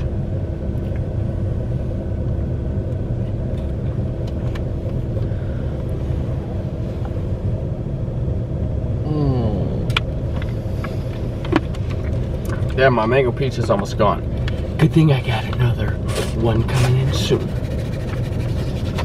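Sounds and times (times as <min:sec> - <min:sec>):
car running rumble and hum: 0:00.0 - 0:19.0.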